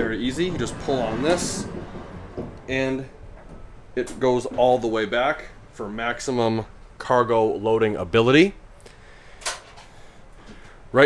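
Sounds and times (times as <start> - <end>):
van sliding door clack: 0.0 - 5.1.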